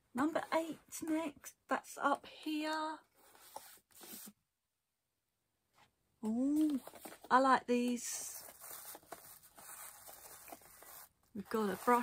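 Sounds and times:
cardboard box handling: 0:06.6 - 0:07.3, 0:08.4 - 0:12.0.

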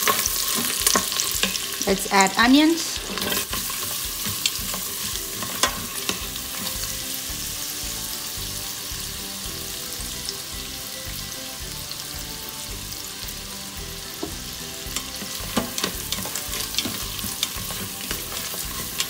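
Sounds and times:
utensil clicking against pot: 0:00.0 - 0:01.8, 0:03.0 - 0:06.8, 0:14.9 - 0:19.0
onions sizzling in pot: 0:00.0 - 0:19.0.

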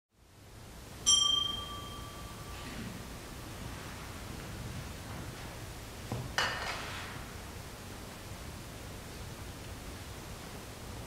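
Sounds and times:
small bell ringing: 0:01.0 - 0:02.6.

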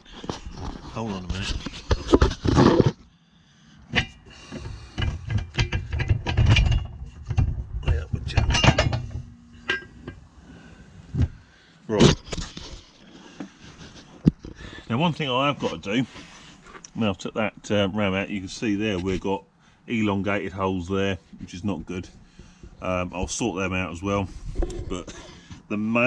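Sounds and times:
handling knocks and clicks: 0:04.0 - 0:10.2
metal clinks: 0:08.4 - 0:10.2.

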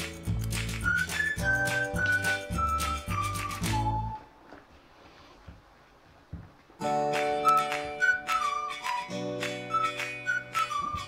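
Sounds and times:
whistled melody: 0:00.0 - 0:04.4, 0:06.8 - 0:11.0.

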